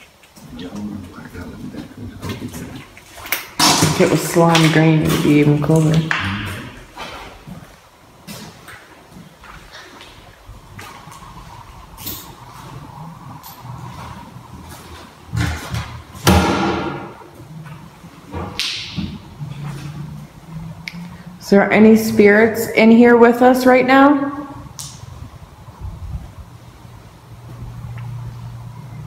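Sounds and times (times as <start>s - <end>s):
louder thumps: 15.4s - 17.2s.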